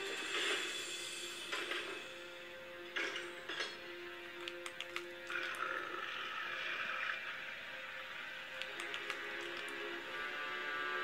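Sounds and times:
background music with held notes: 0.0s - 11.0s
sharp clicks: 4.4s - 5.5s, 8.6s - 9.8s.

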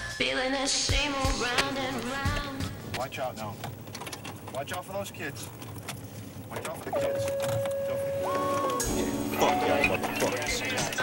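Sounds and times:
faint voices: 0.9s - 11.0s.

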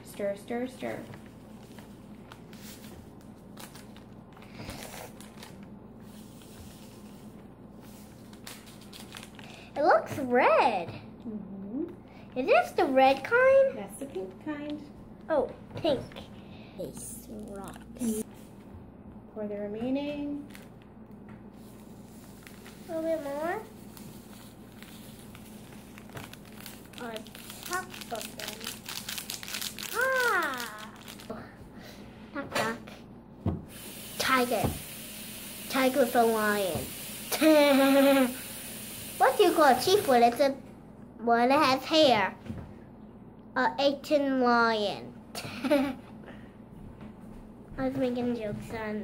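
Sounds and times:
low room hum: 0.0s - 49.0s
plastic packet crinkling: 8.2s - 9.7s, 23.7s - 31.3s
powder rustling and ticking: 22.0s - 31.3s.

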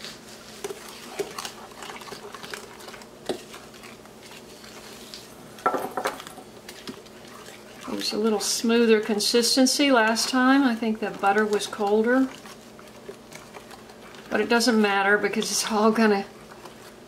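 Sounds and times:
utensil stirring thick mixture: 0.0s - 17.0s.

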